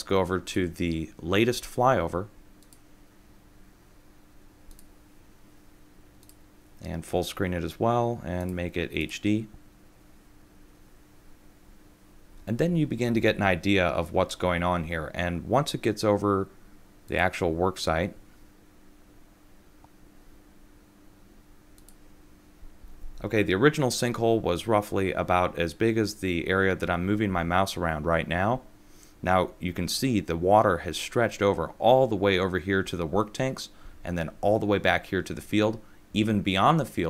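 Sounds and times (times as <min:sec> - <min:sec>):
faint steady hum: 0:00.0 - 0:37.0
computer mouse clicks: 0:02.6 - 0:02.8, 0:04.7 - 0:04.9, 0:06.2 - 0:06.4, 0:21.8 - 0:22.0.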